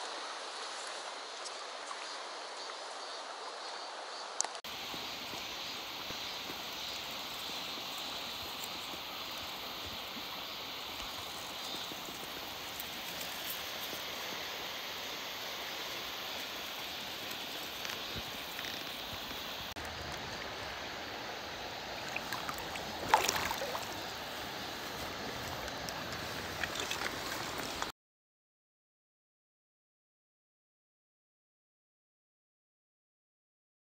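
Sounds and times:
river water rushing: 0.0 - 27.9.

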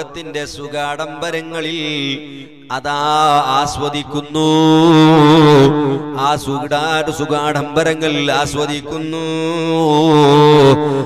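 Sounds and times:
man chanting a sermon: 0.0 - 11.0.

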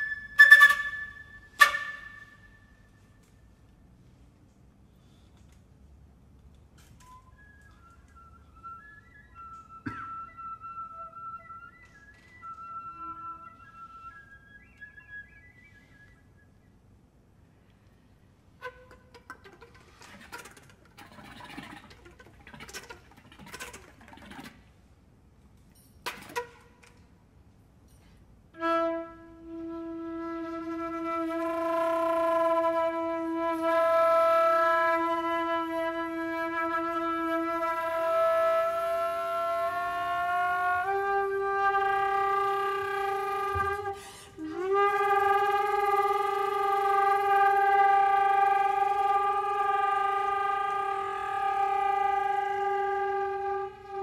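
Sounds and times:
flute chamber music: 0.0 - 3.8, 6.8 - 17.3, 18.4 - 24.5, 28.5 - 54.0
breathy flute air noise: 0.0 - 5.6, 7.0 - 24.0, 28.6 - 54.0.

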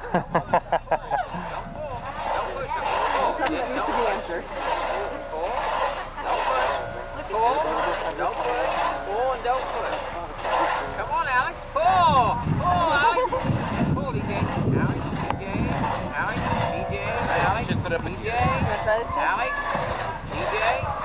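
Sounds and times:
crosscut saw rasping through log: 0.3 - 21.0.

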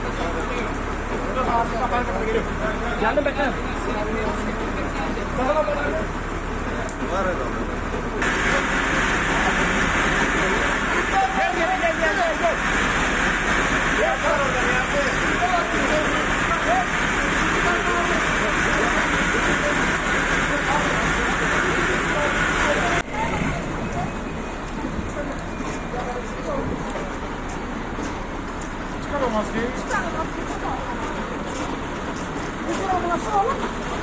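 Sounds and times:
people talking and calling: 0.0 - 34.0
steady rushing hiss: 8.2 - 23.0.

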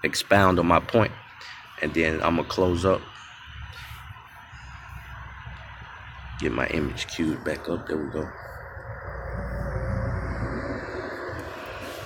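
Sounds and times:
speech: 0.0 - 1.2, 1.8 - 3.1, 6.4 - 8.4
faint high whine: 0.0 - 12.0
low rumble and hum: 3.1 - 12.0.

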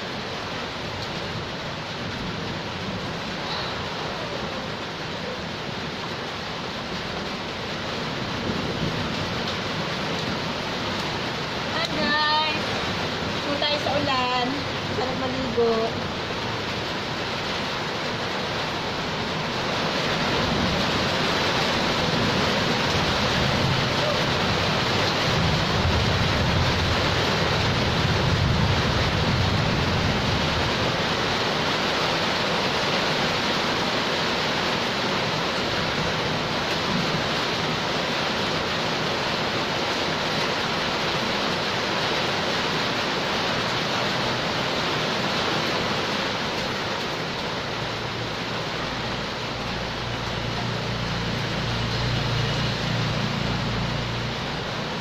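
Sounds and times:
heavy rain on concrete and roofs: 0.0 - 55.0.

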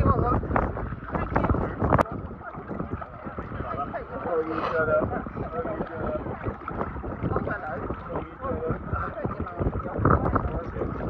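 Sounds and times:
seawater sloshing: 0.0 - 11.0
wind on microphone: 0.0 - 11.0.

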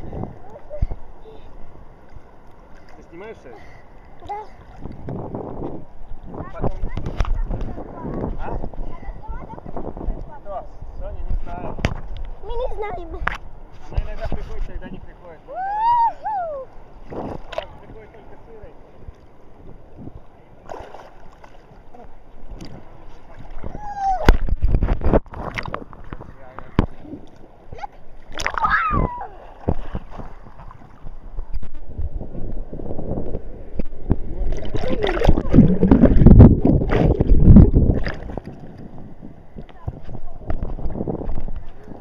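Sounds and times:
water splashing and sloshing: 0.0 - 10.5, 11.2 - 42.0.

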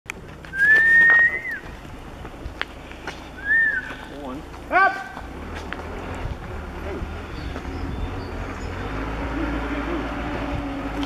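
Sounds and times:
person whistling: 0.5 - 1.6, 3.4 - 4.0.

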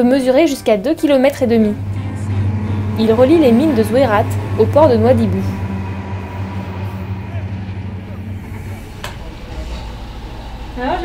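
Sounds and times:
diesel locomotive engine drone: 0.0 - 11.0.

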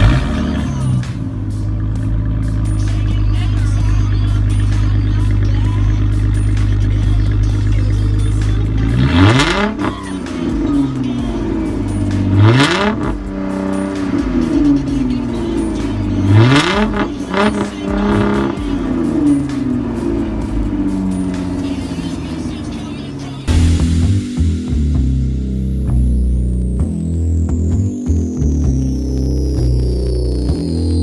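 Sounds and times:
car engine idling and revving: 0.0 - 31.0.

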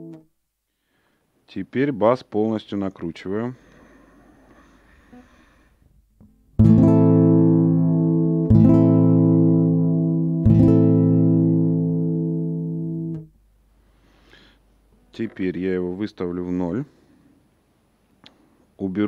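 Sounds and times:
nylon-string guitar chord strummed: 6.6 - 13.3.

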